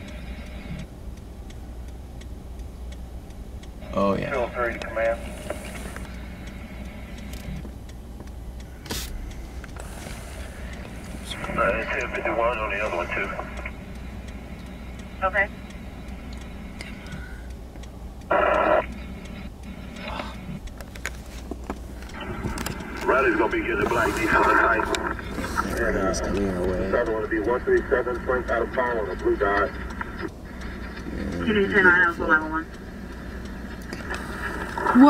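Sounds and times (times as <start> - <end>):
vehicle low rumble: 0.0 - 35.0
scanner radio burst: 3.8 - 7.6, 8.7 - 17.5, 18.3 - 20.6, 22.1 - 35.0.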